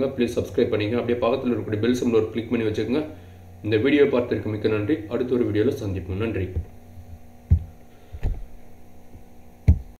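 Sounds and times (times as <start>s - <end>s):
low electrical hum: 0.0s - 10.0s
dull thumps: 6.5s - 10.0s.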